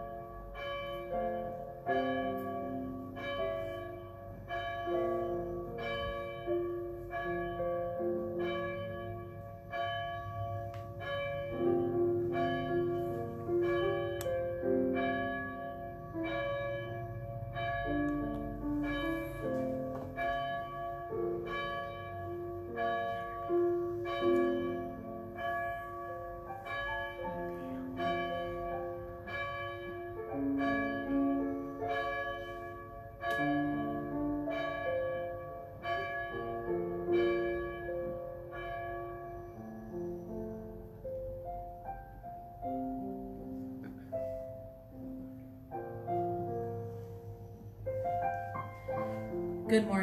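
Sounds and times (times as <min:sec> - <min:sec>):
bells playing slow melody: 0:00.0 - 0:50.0.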